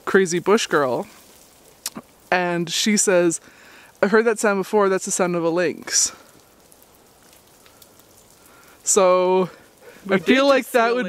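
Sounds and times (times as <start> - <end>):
low hiss: 0.0 - 11.0
water dripping onto snow: 0.0 - 11.0.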